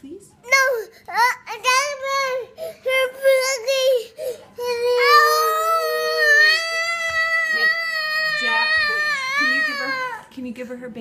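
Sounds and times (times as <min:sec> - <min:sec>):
toddlers crying: 0:04.6 - 0:10.3.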